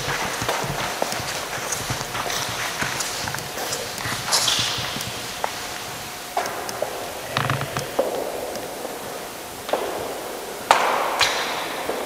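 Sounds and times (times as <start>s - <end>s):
footsteps echoing on stone floor: 0.0s - 9.0s.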